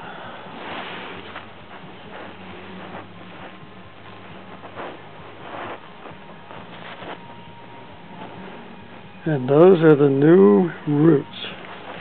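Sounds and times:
low steady hum: 0:00.0 - 0:12.0
rustling and handling noises: 0:00.0 - 0:12.0.

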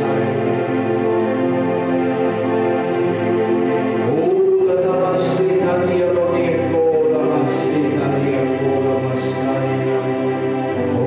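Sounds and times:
man singing slow worship song: 0:00.0 - 0:01.4, 0:04.0 - 0:11.0
electronic keyboard held chords: 0:00.0 - 0:11.0.

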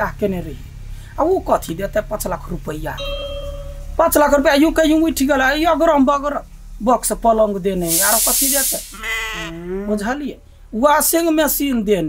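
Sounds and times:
person talking animatedly: 0:04.0 - 0:12.0.

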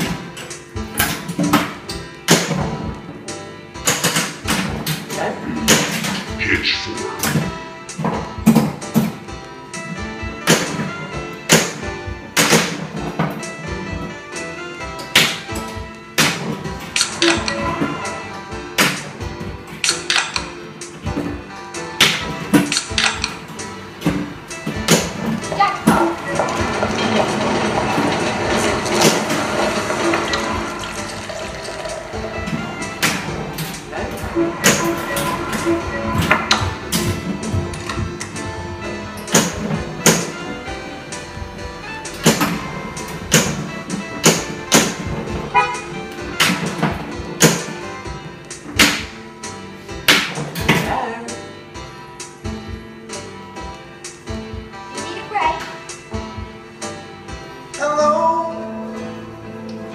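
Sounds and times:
music: 0:00.0 - 0:59.9
pinball ball and flipper clicks: 0:03.8 - 0:05.1.

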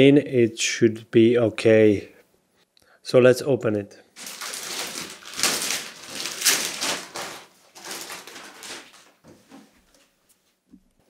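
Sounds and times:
plastic wrap crinkling and tearing: 0:04.2 - 0:09.2.

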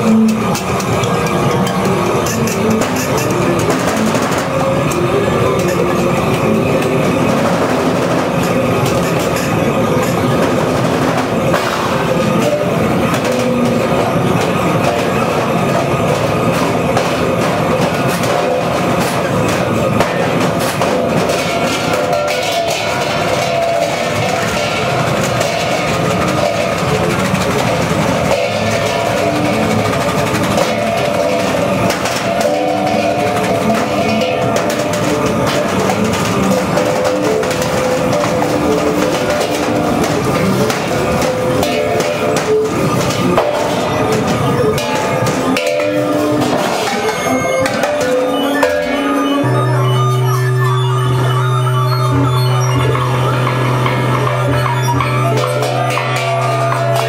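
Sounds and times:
scattered clicks and clatter: 0:00.0 - 0:57.0.

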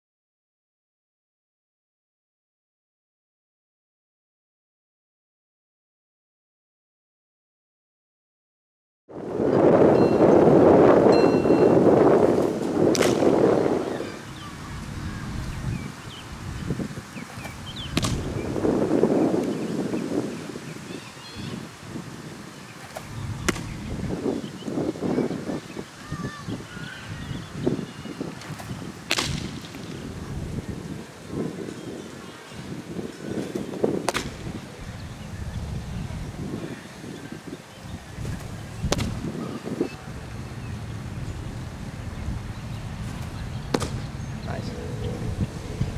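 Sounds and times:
wind buffeting microphone: 0:09.1 - 0:45.9
baseball smacking into mitt: 0:12.9 - 0:13.4, 0:17.4 - 0:18.4, 0:22.9 - 0:23.8, 0:28.5 - 0:29.9, 0:34.0 - 0:34.6, 0:38.3 - 0:39.3, 0:43.7 - 0:44.0.

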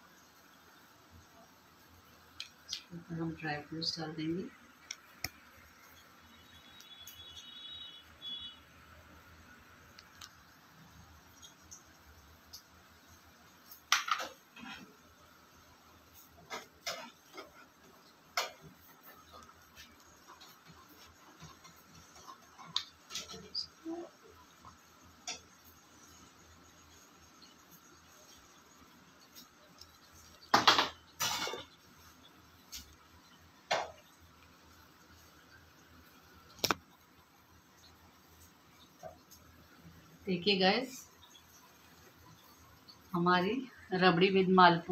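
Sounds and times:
faint steady hum: 0:00.0 - 0:44.9
dishes clicking and knocking: 0:13.8 - 0:14.8, 0:30.4 - 0:31.8.

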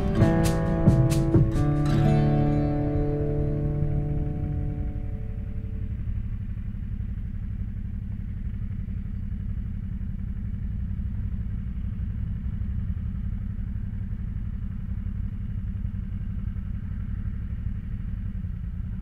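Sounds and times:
motorcycle engine rumbling: 0:00.0 - 0:19.0.

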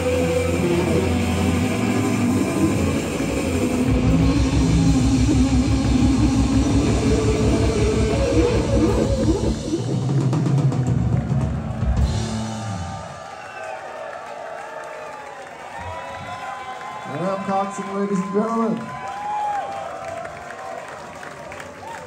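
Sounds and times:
distorted electric guitars: 0:00.0 - 0:13.1
pounding drum kit: 0:00.0 - 0:13.4.

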